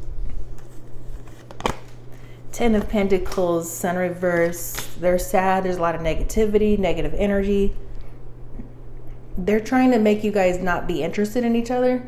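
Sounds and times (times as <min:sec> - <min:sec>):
steady low hum: 0:00.0 - 0:12.0
cards being handled: 0:00.3 - 0:03.4
card snapping: 0:01.2 - 0:02.0.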